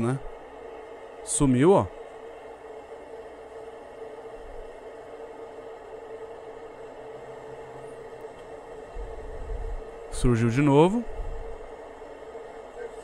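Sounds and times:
faint hum: 0.0s - 13.0s.

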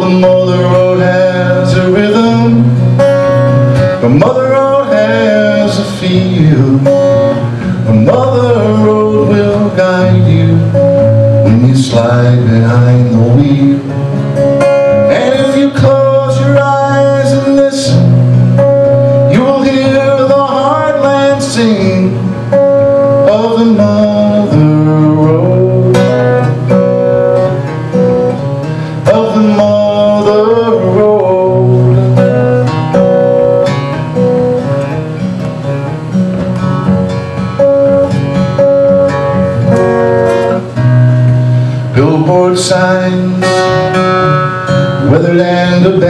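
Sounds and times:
man singing: 0.0s - 3.1s, 3.8s - 18.2s, 18.9s - 26.7s, 28.8s - 32.8s, 41.9s - 46.0s
acoustic guitar country song: 0.0s - 46.0s.

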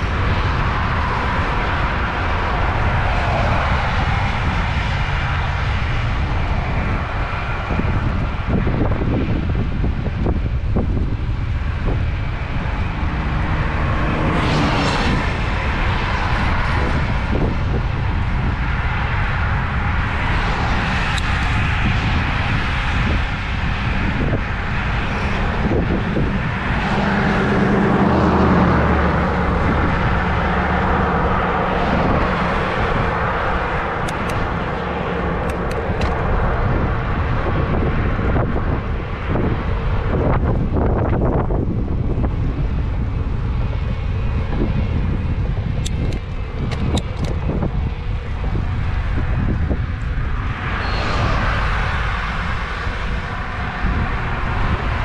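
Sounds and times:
traffic passing: 0.0s - 55.0s
wind on microphone: 0.0s - 55.0s.

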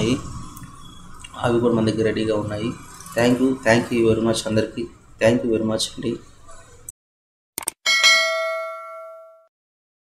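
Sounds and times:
bell-like ding: 7.9s - 9.5s.

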